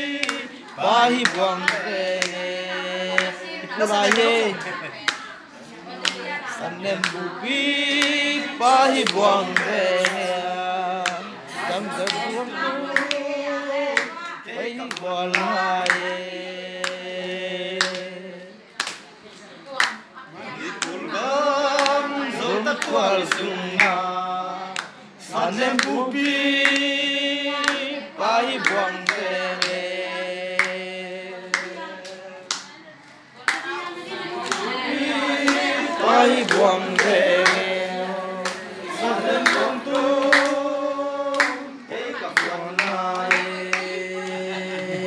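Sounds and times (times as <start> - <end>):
men singing slow song: 0.0 - 4.8, 6.4 - 18.6
group of people singing: 0.0 - 45.0
hand clapping: 0.2 - 2.4, 7.9 - 11.3, 12.9 - 13.2, 14.0 - 14.2, 14.8 - 16.1, 17.8 - 18.1, 18.8 - 19.1, 21.7 - 22.0, 22.7 - 24.0, 24.7 - 25.0, 25.7 - 26.9, 27.6 - 27.8, 28.5 - 29.8, 30.6 - 30.8, 31.5 - 32.8, 34.4 - 40.6, 41.3 - 41.7, 42.3 - 45.0.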